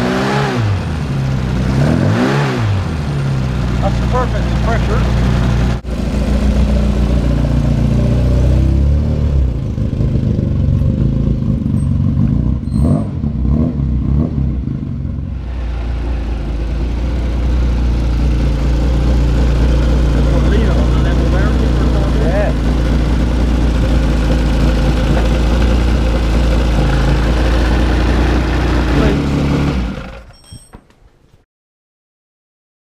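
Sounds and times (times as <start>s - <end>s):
race car engine idling: 2.8s - 8.3s, 14.8s - 30.4s.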